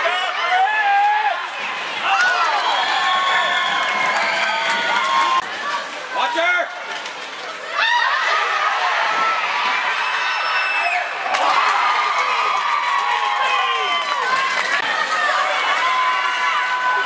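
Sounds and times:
crowd cheering and screaming: 0.0 - 6.4, 7.6 - 17.0.

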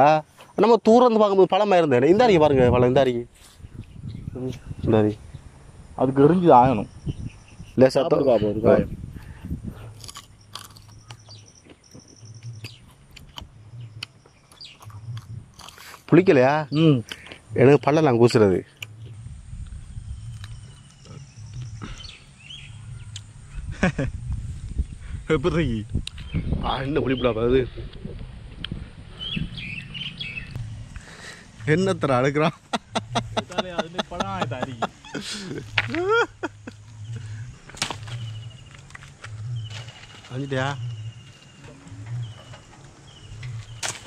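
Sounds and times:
birds chirping: 0.0 - 44.0
low hum: 2.0 - 44.0
person chewing with crisp crunches: 9.8 - 16.1, 18.7 - 22.1
low rumble: 12.2 - 15.6, 17.4 - 44.0.

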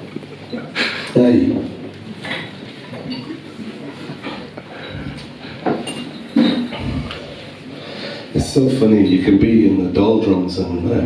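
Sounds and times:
light clinks and knocks: 5.6 - 6.8.

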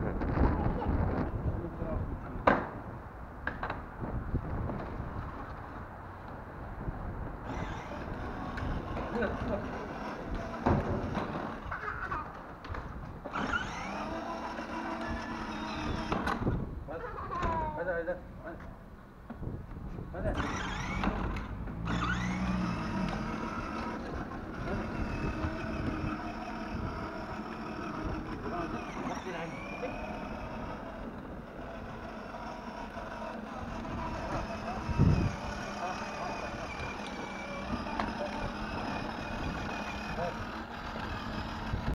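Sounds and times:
electric motor whining: 7.4 - 11.7, 13.2 - 16.6, 20.3 - 41.9.

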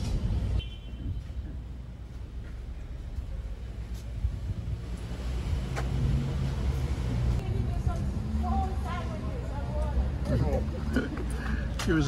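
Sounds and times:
engine hum: 0.0 - 12.0
motor vehicle rumble: 0.0 - 12.0.

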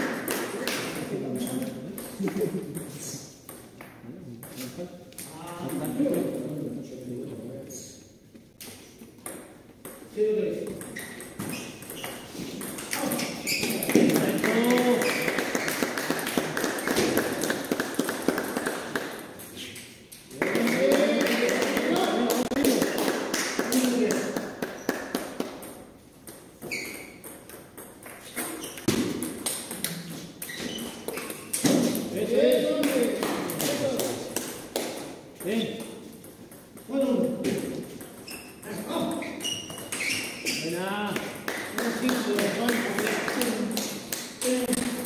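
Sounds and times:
people talking: 4.1 - 8.0, 12.9 - 15.3, 20.4 - 22.9, 32.1 - 34.3, 38.6 - 39.4, 40.6 - 45.0
table tennis balls clicking: 8.6 - 45.0.

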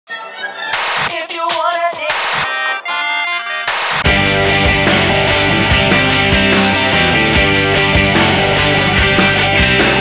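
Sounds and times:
instrumental title music: 2.2 - 10.0.

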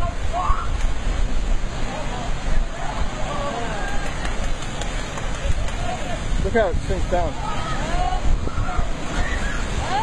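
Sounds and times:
surf washing over rocks: 0.0 - 10.0
wind on microphone: 0.0 - 10.0.

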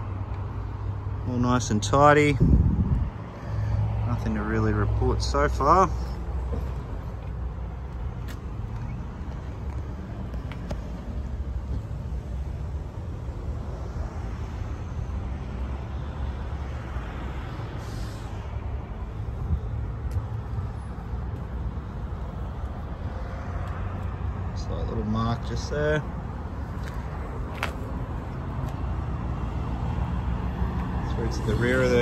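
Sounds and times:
road traffic rumble: 0.0 - 32.0.

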